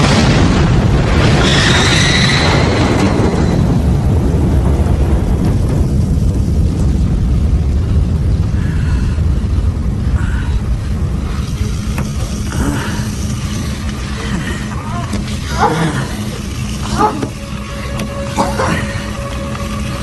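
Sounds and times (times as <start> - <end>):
deep explosion rumble: 0.0 - 20.0.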